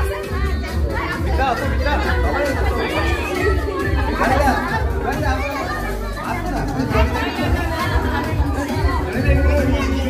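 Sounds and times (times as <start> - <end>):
music with bass beat: 0.0 - 10.0
people talking: 0.0 - 10.0.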